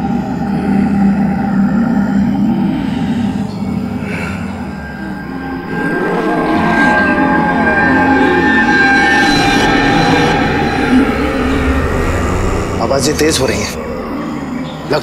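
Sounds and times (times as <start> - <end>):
overlapping moans and wails: 0.5 - 12.8.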